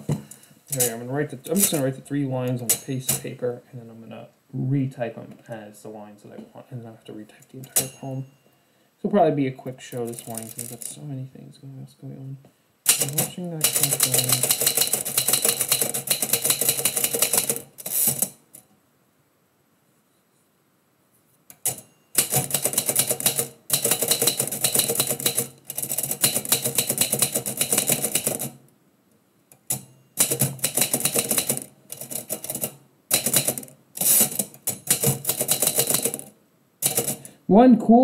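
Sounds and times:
typewriter keys striking: 0.0s - 1.9s, 2.6s - 3.3s, 7.6s - 8.0s, 10.0s - 10.9s, 12.9s - 18.4s, 21.6s - 28.6s, 29.7s - 37.3s.

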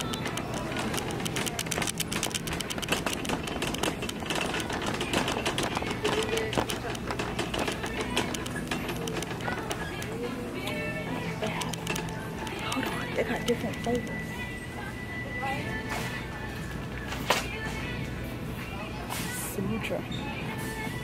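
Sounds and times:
shopping cart wheels rattling: 0.0s - 14.3s.

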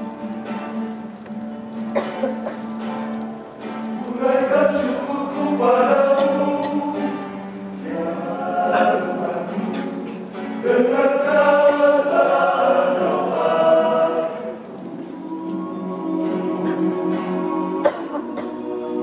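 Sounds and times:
men's vocal group singing: 3.8s - 19.0s.

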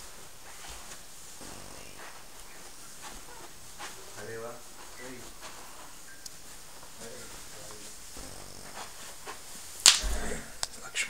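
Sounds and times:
loud sharp smack: 9.8s - 10.5s.

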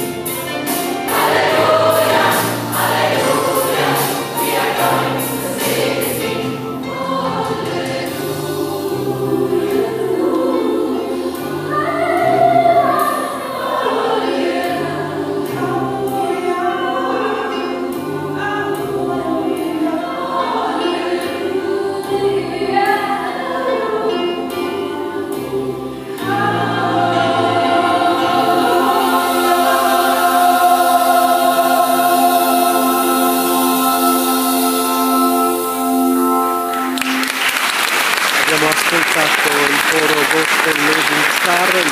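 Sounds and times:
gospel choir singing: 0.0s - 41.9s.

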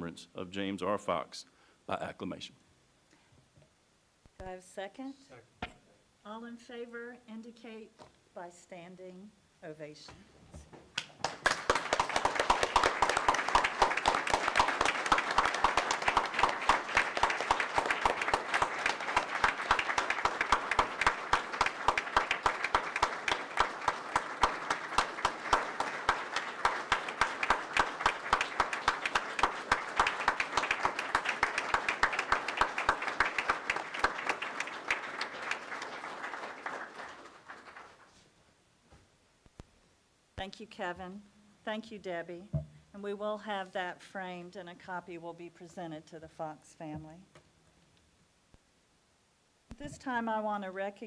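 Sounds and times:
crowd applauding: 11.0s - 38.2s.

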